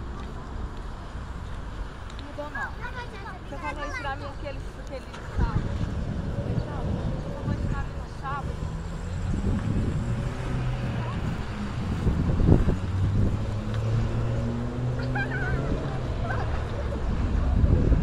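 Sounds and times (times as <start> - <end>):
vehicle engine hum: 0.0 - 18.0
wind rumble on microphone: 3.9 - 18.0.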